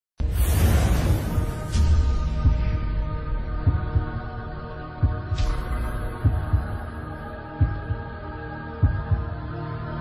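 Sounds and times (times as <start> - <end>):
swoosh with high sparkle: 0.2 - 2.4
deep bass heartbeat pulse: 1.7 - 9.4.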